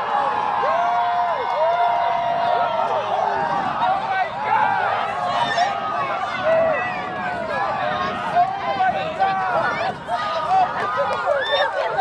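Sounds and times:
crowd shouting and whooping: 0.0 - 12.0.

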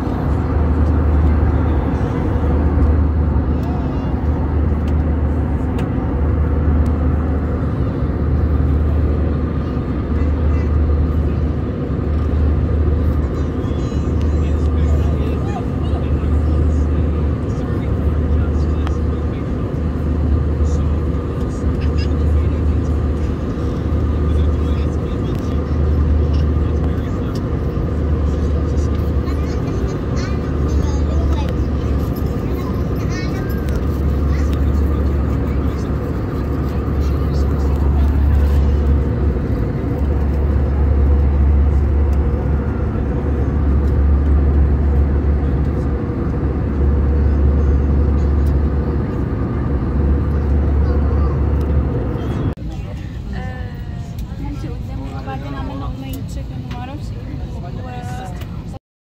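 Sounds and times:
steady hum: 0.0 - 58.7
jet engine drone: 0.0 - 58.8.

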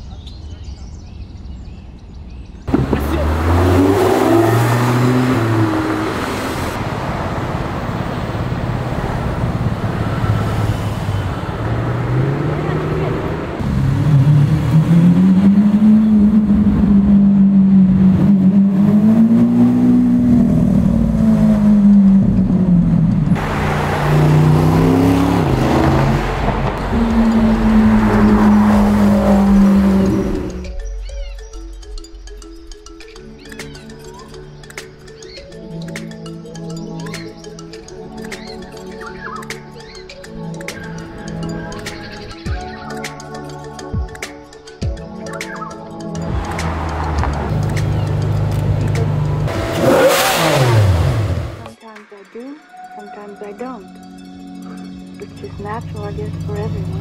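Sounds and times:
sports car engine revving: 2.7 - 7.0, 9.3 - 30.7, 46.3 - 51.8.

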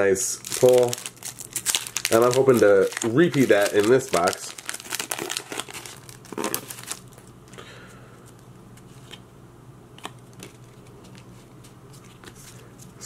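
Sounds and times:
foil wrapper crinkling: 0.4 - 7.6.

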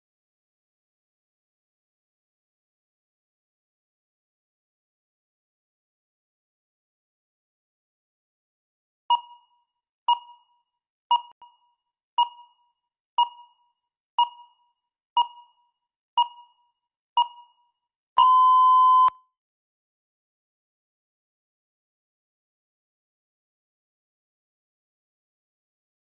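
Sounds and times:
long timer beep: 18.2 - 19.2
short high timer beeps: 18.2 - 19.2.

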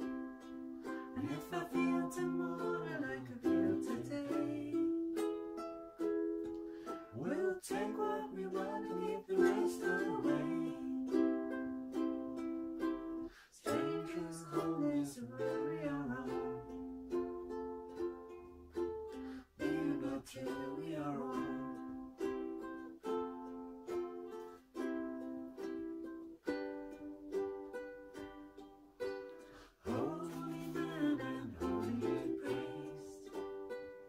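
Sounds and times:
ukuleles strumming chords: 0.0 - 34.0.

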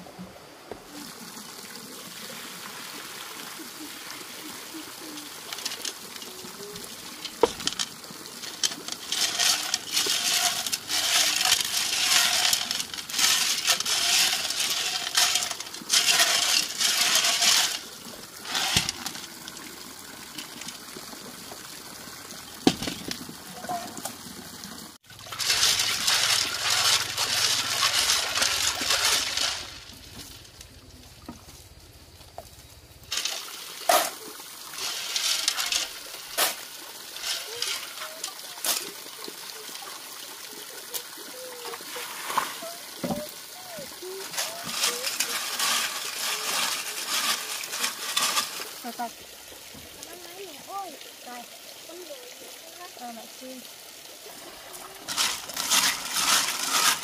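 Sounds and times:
water sloshing and pouring: 0.8 - 57.0
snail shells rattling in a pot: 5.0 - 20.9, 25.1 - 39.0, 43.0 - 49.2, 55.1 - 57.0.

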